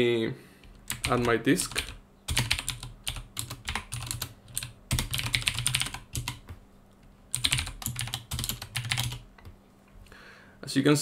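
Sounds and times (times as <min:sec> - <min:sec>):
typing on computer keyboard: 0:00.6 - 0:06.6, 0:07.3 - 0:09.6.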